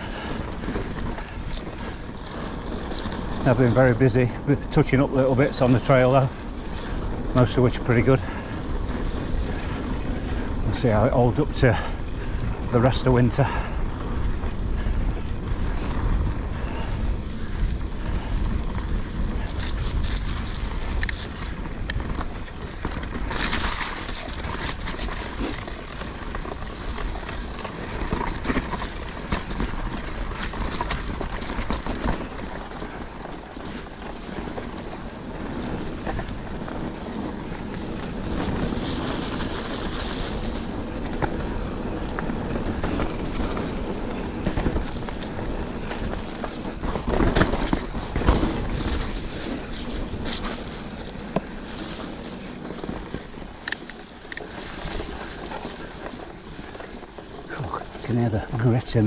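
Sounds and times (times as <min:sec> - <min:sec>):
bike chain and frame rattling: 0:00.0 - 0:59.0
tyres rolling over dirt and stones: 0:00.0 - 0:59.0
wind buffeting microphone: 0:00.0 - 0:59.0.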